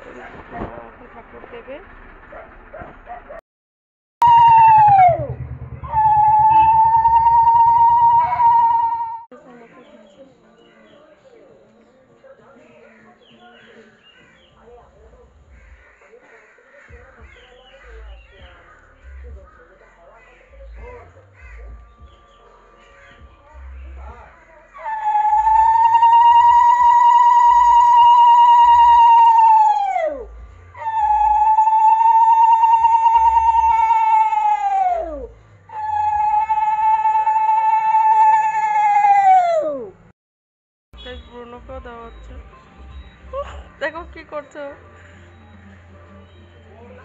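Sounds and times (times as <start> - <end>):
birds calling harshly: 12.6 - 36.4, 41.0 - 47.0.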